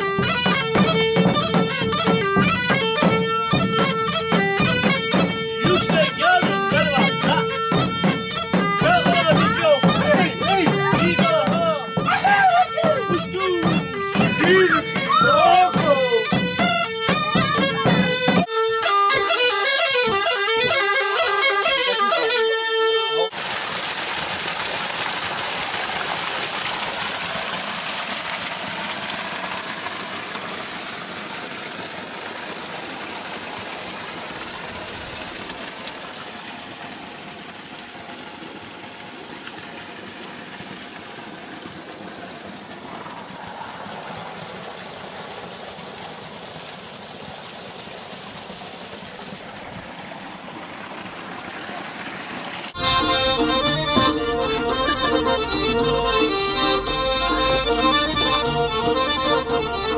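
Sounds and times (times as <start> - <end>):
bagpipe drone and melody: 0.0 - 23.3, 52.8 - 59.9.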